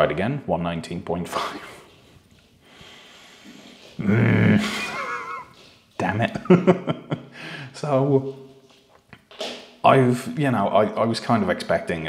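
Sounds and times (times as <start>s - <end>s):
man's stifled laugh through nose: 4.1s - 5.6s.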